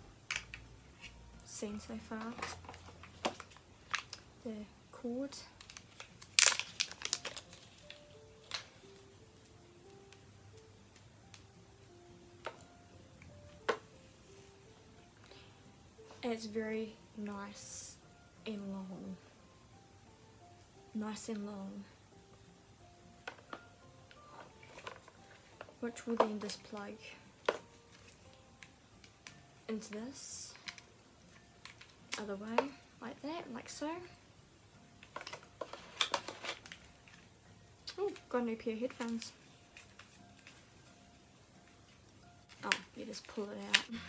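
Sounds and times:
soft background music: 0.0s - 44.0s
faint handling sounds: 23.2s - 32.8s, 38.9s - 41.0s.

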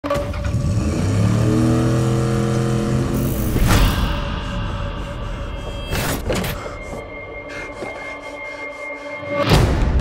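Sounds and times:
car engine running: 0.4s - 5.4s.

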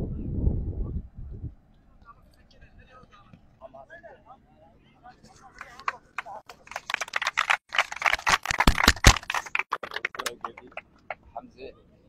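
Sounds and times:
group clapping: 5.6s - 11.2s
voices: 9.3s - 12.0s.

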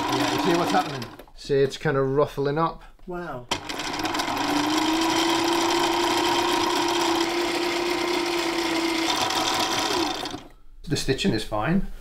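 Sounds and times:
sewing machine running: 0.0s - 1.3s, 3.5s - 10.5s.

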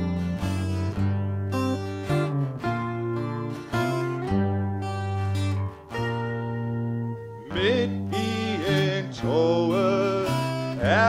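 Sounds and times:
guitar: 0.0s - 11.0s
steady bass line: 0.0s - 11.0s
person singing long note: 7.5s - 11.0s.

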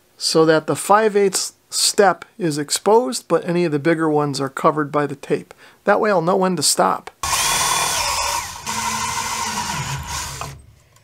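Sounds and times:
cordless drill drilling plastic: 7.2s - 10.6s.

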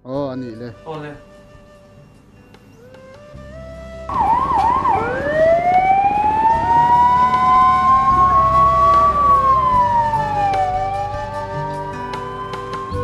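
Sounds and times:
ambulance siren: 1.6s - 13.0s.

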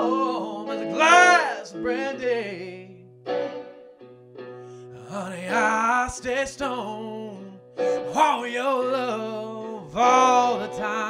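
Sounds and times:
person singing: 0.0s - 3.1s, 4.9s - 11.0s
guitar chords strummed: 0.0s - 11.0s.

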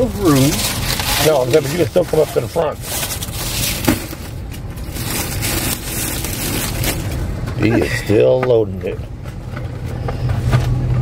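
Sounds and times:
plastic wrap crinkling: 0.0s - 7.5s
steady low hum: 0.0s - 11.0s.

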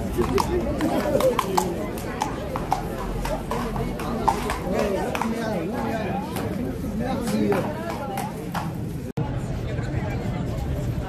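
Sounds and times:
horse hooves clip-clopping: 0.0s - 9.0s
onlookers chattering: 0.0s - 11.0s.

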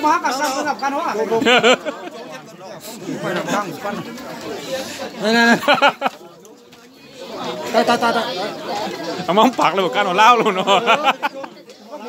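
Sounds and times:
men chatting: 0.0s - 12.0s.

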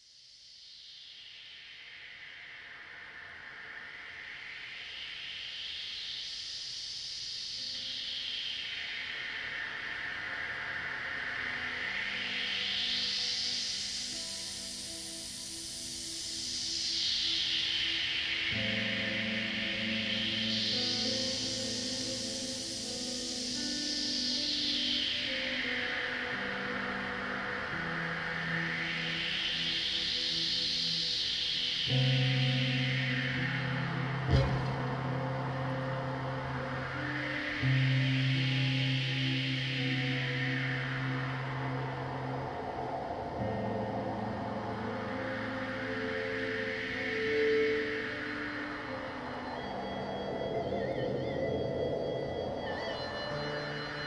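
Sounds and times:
filtered hiss sweeping: 0.1s - 54.0s
sustained synthesizer chords: 25.2s - 54.0s.

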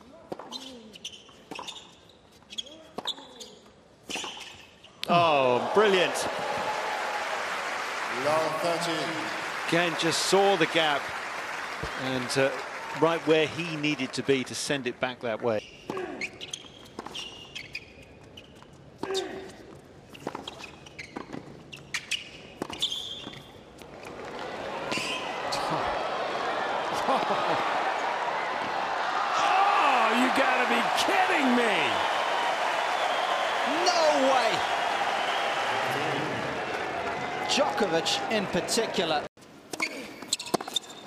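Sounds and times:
shoe squeaks: 0.4s - 5.0s, 15.6s - 23.8s, 24.9s - 25.7s, 39.7s - 41.0s
crowd cheering and shouting: 5.1s - 11.0s, 23.9s - 39.3s.

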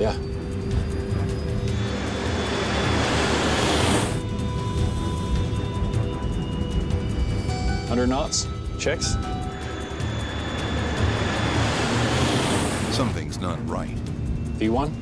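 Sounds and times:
jet engine takeoff roar: 0.0s - 15.0s
tense droning background music: 0.0s - 15.0s
low rumble: 0.2s - 7.8s, 8.4s - 14.5s.

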